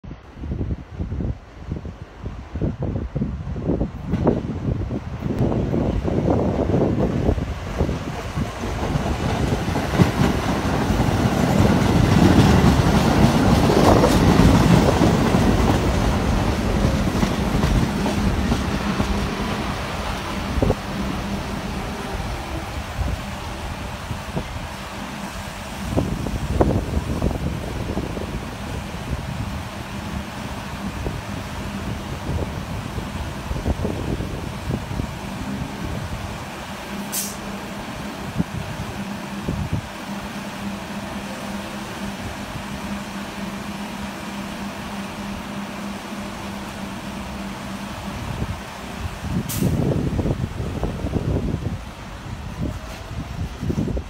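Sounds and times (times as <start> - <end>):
electric train rolling past: 0.2 - 54.0
train wheels knocking: 7.8 - 21.9.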